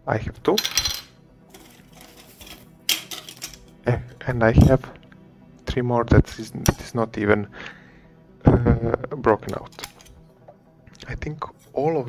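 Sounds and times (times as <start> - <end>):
rustling of circuit boards: 1.5 - 3.7.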